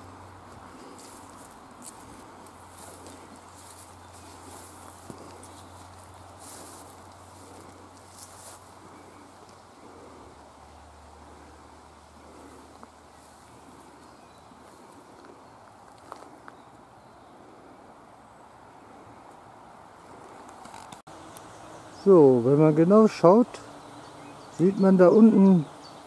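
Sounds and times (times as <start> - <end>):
soft rustles: 0.0 - 9.6.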